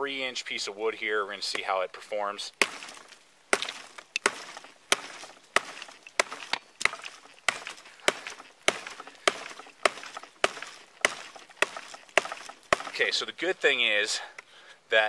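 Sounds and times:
tomahawk chopping branch: 2.5 - 13.3.

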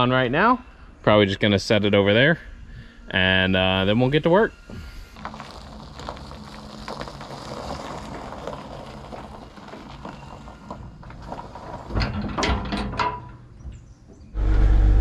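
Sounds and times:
pickup engine idling: 4.7 - 11.9
sharp metallic clunks: 11.9 - 14.4.

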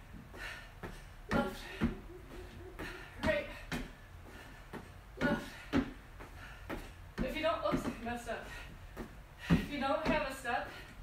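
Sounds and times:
feet knocking on aerobic step: 0.8 - 8.2, 8.9 - 10.4.

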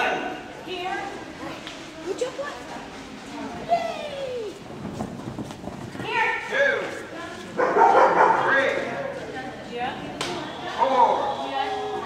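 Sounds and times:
voices: 6.0 - 12.0
dog barking indoors: 7.6 - 8.6.

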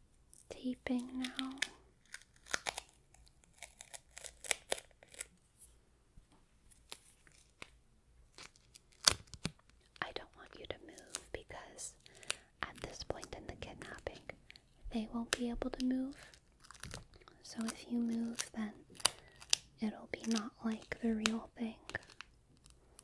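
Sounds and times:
adhesive tape ripping: 1.0 - 5.4, 8.3 - 9.7, 16.1 - 20.9.

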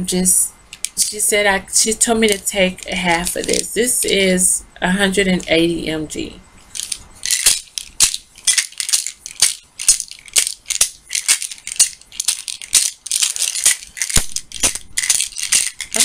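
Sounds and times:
pills rattling in plastic bottle: 2.2 - 3.7, 6.7 - 16.0.

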